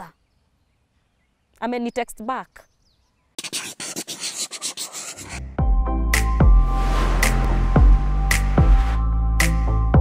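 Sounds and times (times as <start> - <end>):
electronic music with heavy bass: 6.2 - 10.0.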